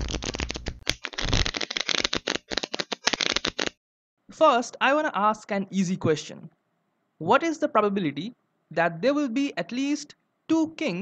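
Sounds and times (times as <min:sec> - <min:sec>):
playing cards being shuffled: 0:00.0 - 0:03.8.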